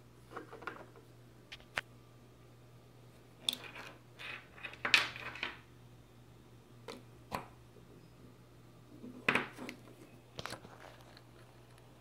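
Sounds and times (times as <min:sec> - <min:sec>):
wires and cable handling clicks: 0:09.5 - 0:11.9.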